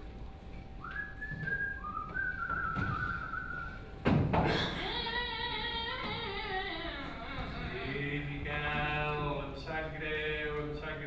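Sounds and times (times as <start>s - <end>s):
person whistling: 0.8s - 3.9s.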